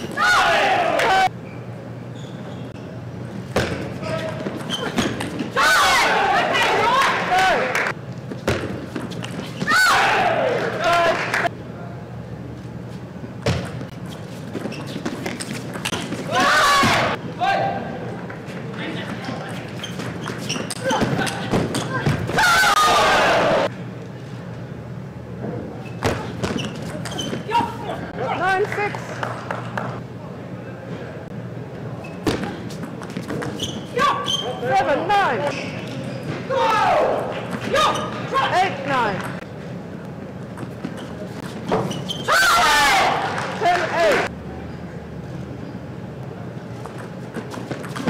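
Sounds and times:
players shouting: 0.1 - 1.4, 5.5 - 7.9, 9.7 - 11.5, 16.2 - 18.1, 20.8 - 23.7, 36.4 - 39.1, 42.3 - 44.3.

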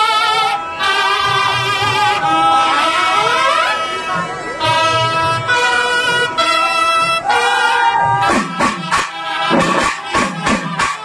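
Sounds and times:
brass horns playing a melody: 0.0 - 11.0.

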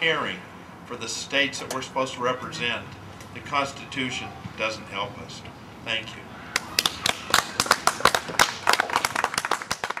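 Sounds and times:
audience applauding: 6.5 - 10.0.

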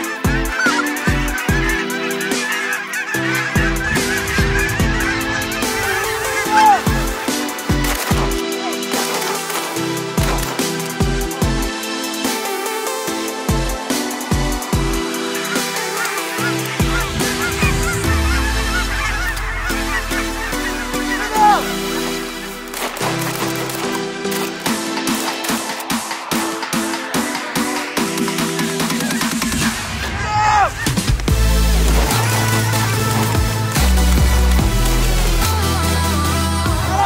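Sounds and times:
geese honking: 0.0 - 37.0
electronic music with heavy bass: 30.9 - 37.0.

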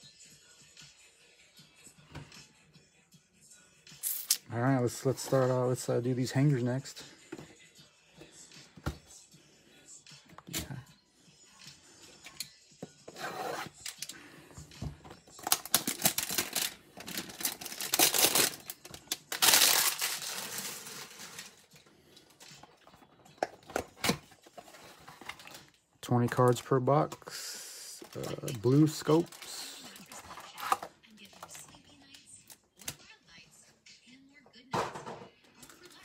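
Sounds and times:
cardboard tearing and rustling: 15.4 - 21.4.

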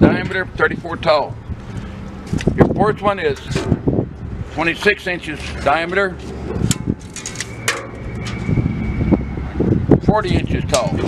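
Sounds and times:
low rumble: 3.5 - 11.0
high ringing tone: 7.1 - 9.9.

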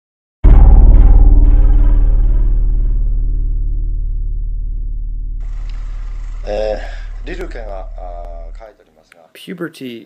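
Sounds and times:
deep gong-like tone: 0.4 - 8.6
faint room hiss: 5.4 - 10.0.

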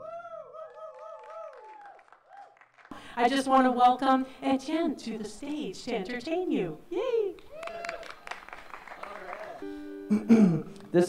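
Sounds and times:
acoustic guitar strummed: 9.6 - 11.0.

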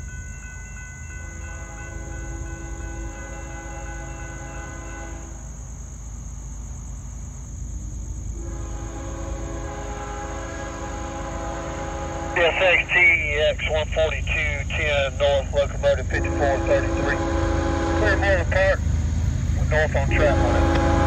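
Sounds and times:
crickets chirping: 0.0 - 21.0
low train rumble: 0.0 - 21.0
locomotive air horn blasts: 1.5 - 5.4, 8.4 - 13.3, 16.1 - 18.6, 19.7 - 21.0.

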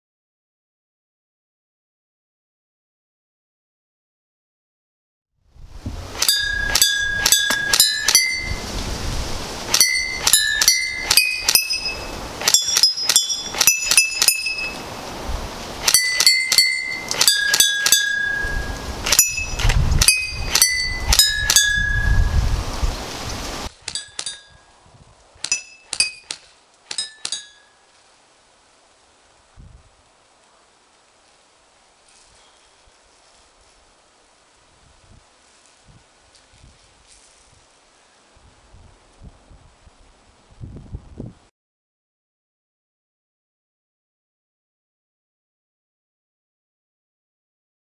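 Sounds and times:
background hiss: 5.5 - 41.5.

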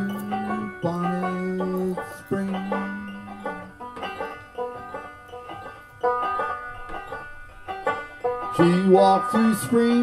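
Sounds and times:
banjo chord strummed: 0.0 - 10.0
banjo picking: 0.0 - 10.0.

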